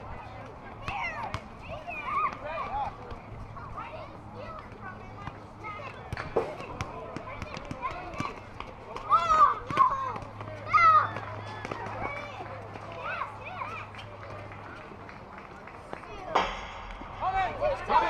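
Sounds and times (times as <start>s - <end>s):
people calling out and chattering: 0.0s - 18.0s.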